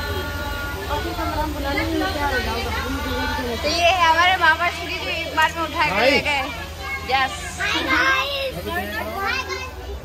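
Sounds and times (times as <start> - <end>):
low steady hum: 0.0 - 10.0
women and children talking: 0.0 - 10.0.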